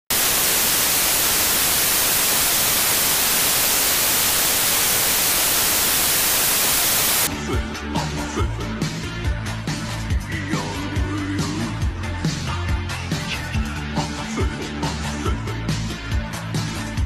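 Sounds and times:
television static hiss: 0:00.0 - 0:07.3
music with bass line: 0:07.3 - 0:17.0.

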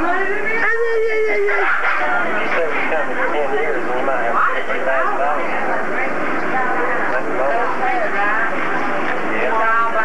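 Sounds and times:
baby wailing: 0:00.0 - 0:01.6
voices: 0:00.0 - 0:10.0.

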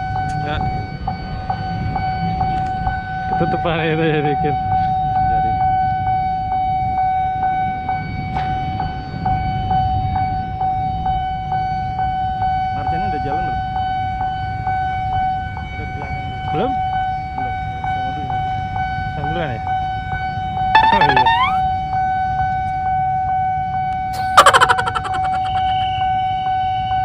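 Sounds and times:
level crossing alarm ringing: 0:20.8 - 0:21.6.

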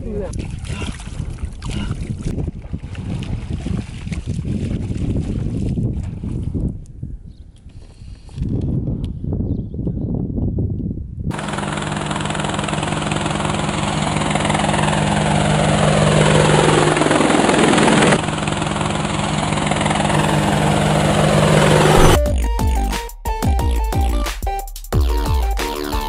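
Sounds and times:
steady low hum: 0:11.4 - 0:22.2
loud rushing noise: 0:20.1 - 0:22.2
sweeps falling in pitch: 0:20.1 - 0:22.3
electronic music with heavy beat: 0:22.2 - 0:26.0.

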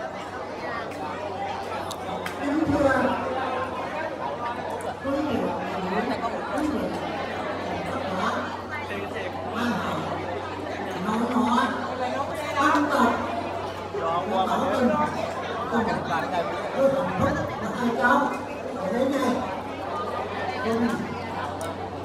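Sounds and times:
chatter of many guests: 0:00.0 - 0:22.0.

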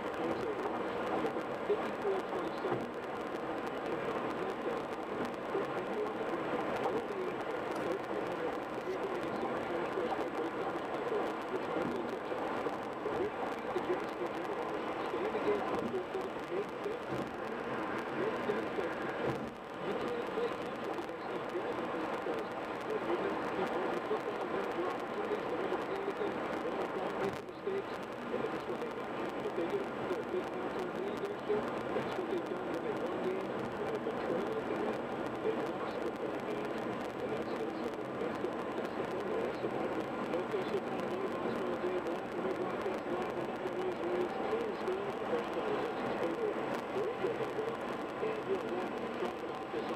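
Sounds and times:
muffled voice talking: 0:00.0 - 0:49.9
road and tyre noise in car: 0:00.1 - 0:25.5, 0:26.3 - 0:49.9.

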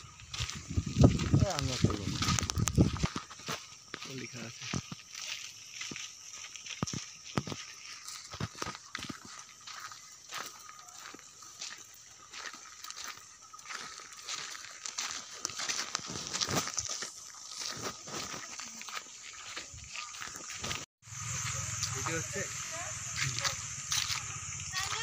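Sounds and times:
footsteps on gravel: 0:00.0 - 0:25.0
high-pitched background hum: 0:20.0 - 0:25.0.

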